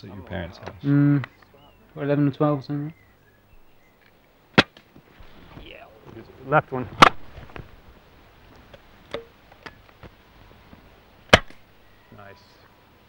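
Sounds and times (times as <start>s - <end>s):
air rifle shots: 4.5s - 4.9s, 11.3s - 11.7s.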